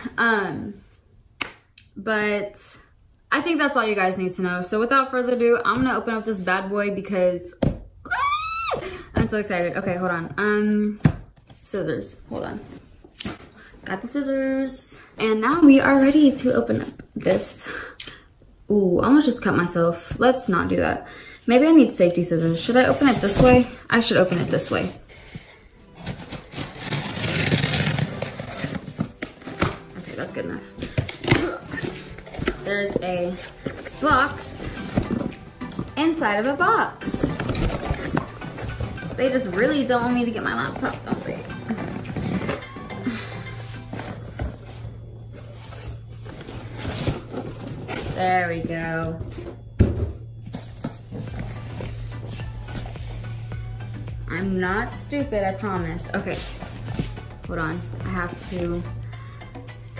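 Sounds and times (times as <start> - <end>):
cardboard rustling: 22.6 - 36.3, 37.0 - 53.5
scissors cutting cardboard: 26.0 - 29.8.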